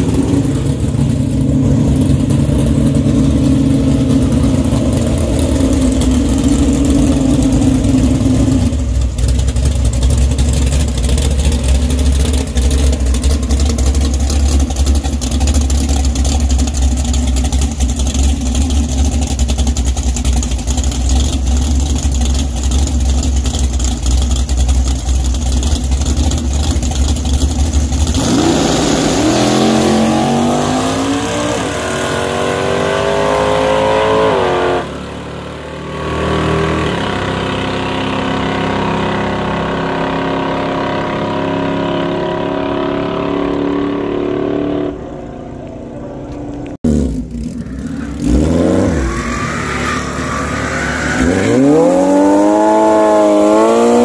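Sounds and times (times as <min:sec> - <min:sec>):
drag car engine: 0:00.0 - 0:54.0.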